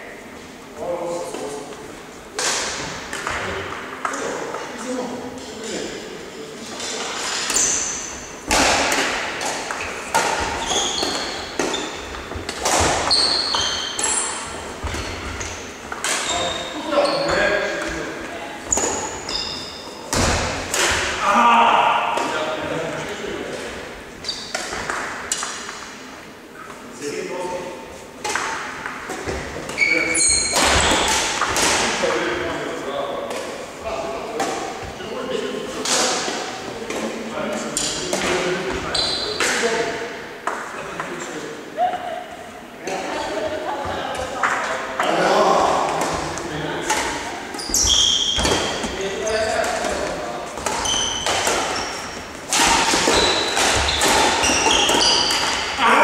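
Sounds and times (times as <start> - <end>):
shoes squeaking on wooden floor: 9.7 - 20.2, 28.9 - 31.5, 46.2 - 55.8
players' voices: 14.6 - 24.1, 25.6 - 56.0
rackets striking shuttlecock: 45.9 - 55.8.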